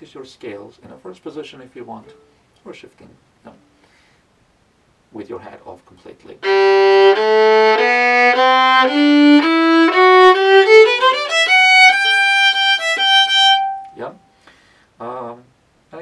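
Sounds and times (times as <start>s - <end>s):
bowed violin playing a scale: 6.4s - 14.0s.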